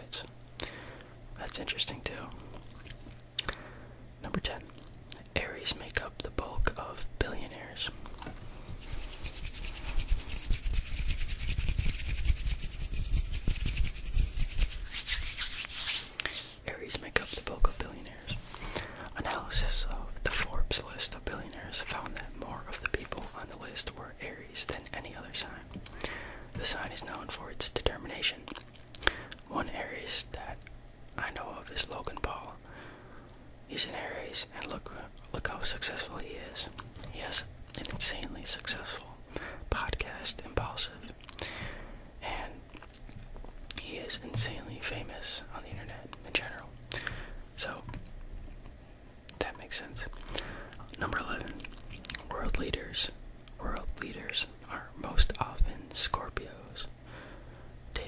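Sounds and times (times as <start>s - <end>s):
man whispering: 0.0s - 0.4s, 1.4s - 2.5s, 4.2s - 8.0s, 16.6s - 18.4s, 19.1s - 25.7s, 26.6s - 28.6s, 29.4s - 32.6s, 33.7s - 41.2s, 42.2s - 42.8s, 43.7s - 47.0s, 47.6s - 47.9s, 49.3s - 57.0s
steady hiss with low rumble: 0.0s - 58.0s.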